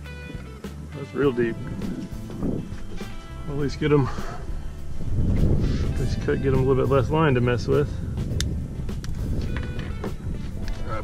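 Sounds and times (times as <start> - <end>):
background music: 0.0 - 11.0
low rumble: 1.3 - 10.7.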